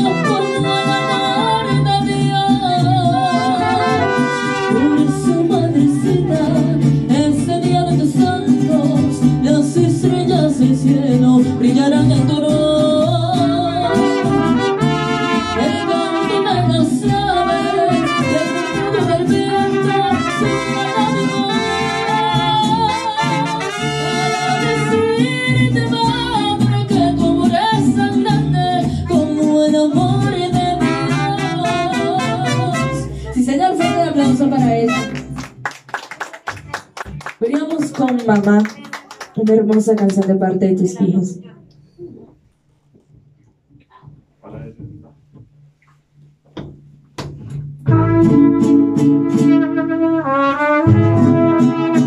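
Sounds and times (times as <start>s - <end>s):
trumpets: 0.0s - 1.9s, 3.2s - 5.6s, 13.8s - 25.4s, 30.7s - 33.2s, 33.8s - 35.4s, 47.9s - 52.0s
person singing: 0.0s - 14.4s, 15.0s - 34.2s
strummed guitars: 0.0s - 35.8s, 46.6s - 52.0s
scattered clapping: 35.0s - 40.4s.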